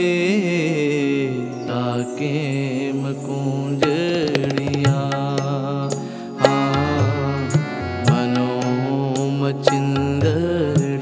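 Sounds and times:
harmonium chords: 0.0s - 11.0s
tabla strokes: 3.4s - 11.0s.

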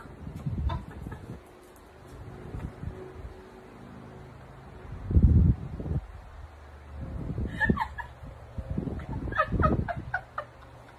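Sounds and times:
women laughing hard: 0.4s - 1.4s, 7.4s - 10.9s.

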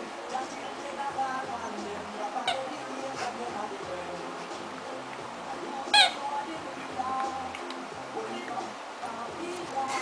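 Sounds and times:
background music with steady notes: 0.0s - 10.0s.

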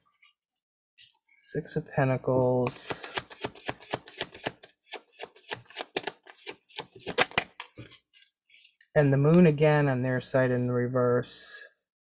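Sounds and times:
cards being shuffled: 2.6s - 8.3s.

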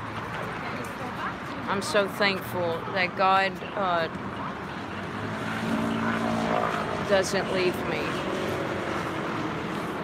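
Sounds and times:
city background noise: 0.0s - 10.0s
vehicle passing: 1.3s - 10.0s.

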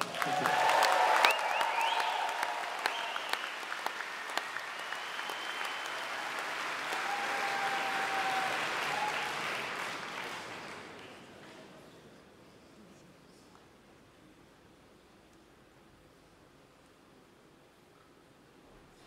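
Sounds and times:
audience applauding: 0.0s - 11.5s.

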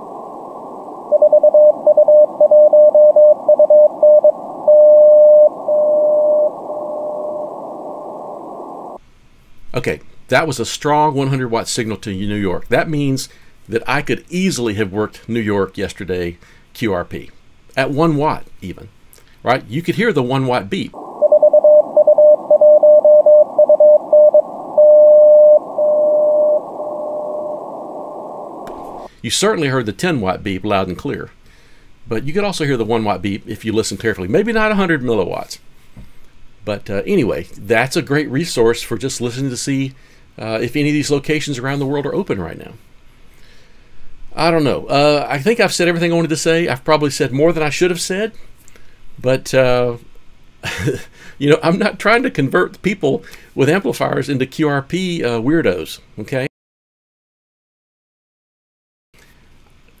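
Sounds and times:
radio band hiss: 0.0s - 2.4s, 5.3s - 9.0s, 23.5s - 29.4s
long morse dashes: 0.0s - 9.0s, 21.0s - 29.1s
receiver hiss: 0.0s - 9.0s, 18.5s - 35.7s
morse code tone: 1.1s - 7.5s, 21.0s - 27.6s.

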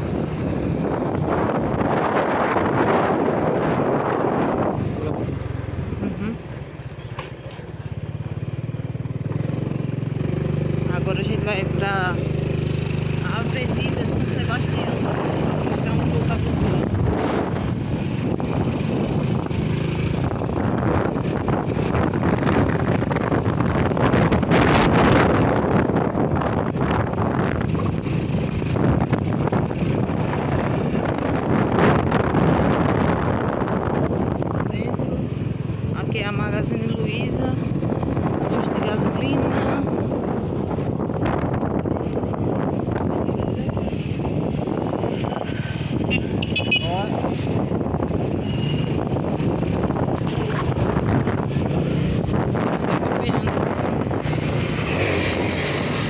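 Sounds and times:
wind on microphone: 0.0s - 6.4s, 9.3s - 56.0s
motorcycle engine: 0.0s - 56.0s
road noise: 0.0s - 56.0s.

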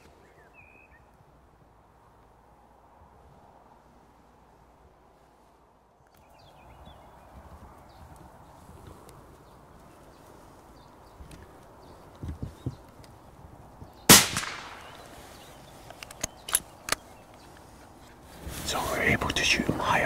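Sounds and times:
rifle shot with echo: 14.1s - 15.3s.

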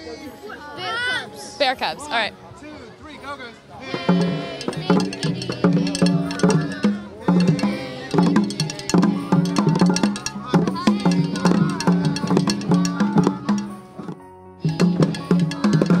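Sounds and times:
children singing: 3.8s - 16.0s
hand drums beaten with sticks: 3.9s - 16.0s.

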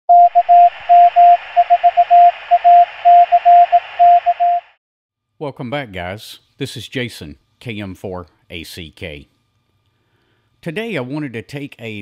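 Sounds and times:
morse code tone: 0.1s - 4.8s.

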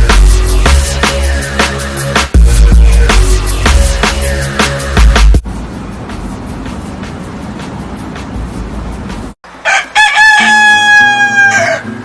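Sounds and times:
dance music with steady beat: 0.0s - 5.4s
soft music: 0.0s - 9.4s
rooster crowing: 9.6s - 12.0s.

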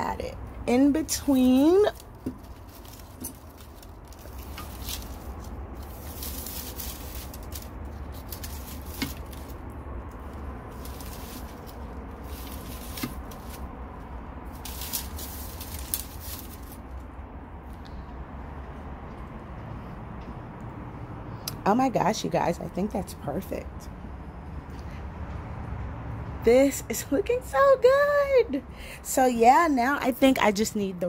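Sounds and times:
low rumble: 0.0s - 21.4s.

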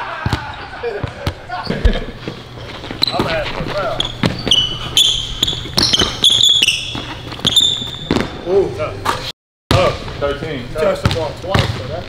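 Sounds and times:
sneakers squeaking: 0.1s - 9.3s
basketball bouncing on wooden floor: 4.0s - 8.3s.

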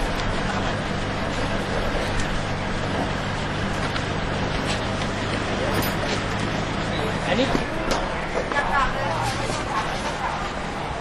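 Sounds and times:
street noise: 0.0s - 11.0s
vehicle engine idling: 0.0s - 11.0s.

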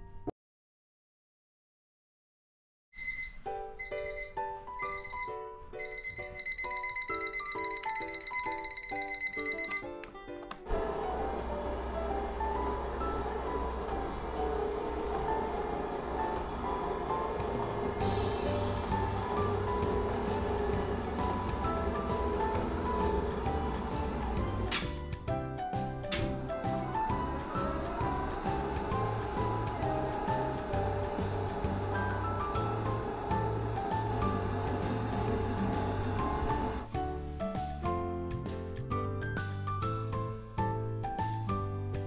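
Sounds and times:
background music: 3.0s - 42.0s.

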